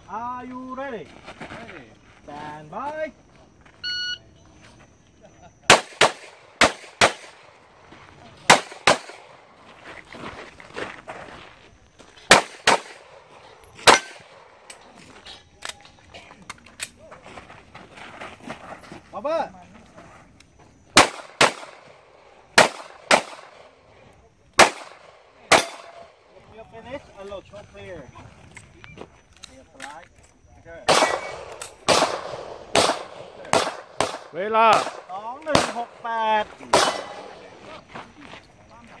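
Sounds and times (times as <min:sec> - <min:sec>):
handgun shots: 0:08.5 - 0:09.2, 0:13.8 - 0:14.3, 0:24.6 - 0:26.1, 0:30.9 - 0:35.9.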